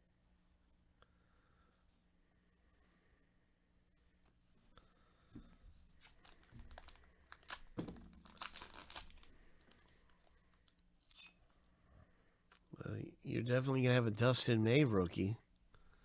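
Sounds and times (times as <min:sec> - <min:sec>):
foil wrapper tearing and crinkling: 0:06.0 - 0:10.0.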